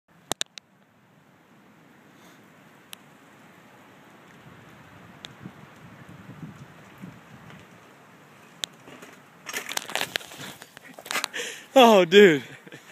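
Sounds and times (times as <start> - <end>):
mountain bike rolling on dirt: 4.1 - 11.6
bike crashing into camera: 8.8 - 11.4.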